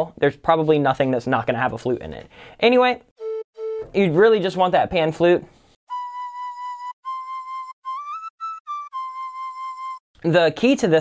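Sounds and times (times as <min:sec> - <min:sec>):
pan flute synth melody: 0:03.2 - 0:04.1, 0:05.9 - 0:10.0.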